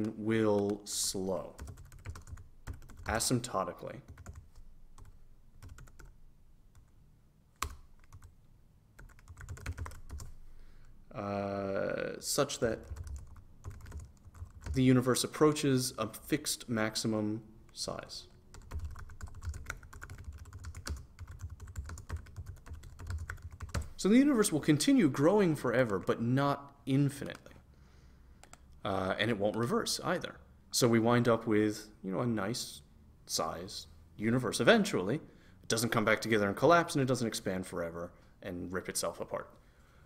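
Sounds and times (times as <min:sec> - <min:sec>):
fast typing on keyboard: 0:01.6 - 0:03.2, 0:04.1 - 0:04.4, 0:05.0 - 0:06.1, 0:07.6 - 0:08.3, 0:09.0 - 0:10.3, 0:12.8 - 0:14.8, 0:18.5 - 0:23.9.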